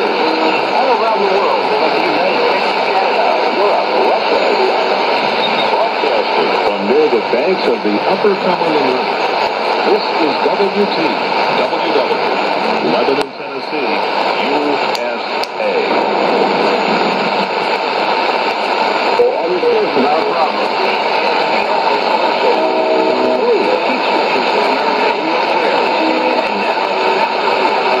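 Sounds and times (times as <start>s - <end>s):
weak voice on radio: 0.0s - 16.1s, 16.8s - 28.0s
radio static hiss: 0.0s - 28.0s.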